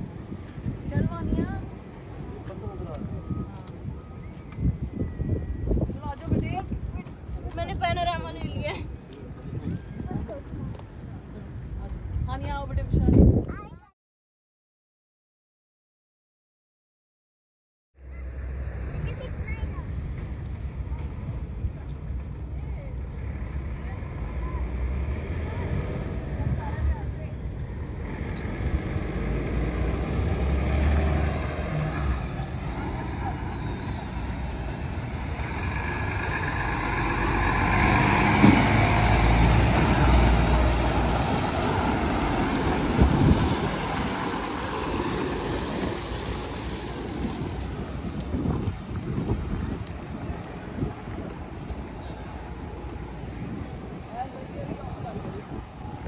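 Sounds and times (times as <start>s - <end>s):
wind buffeting microphone: 0.0s - 13.9s, 18.9s - 56.0s
heavy truck passing: 23.0s - 56.0s.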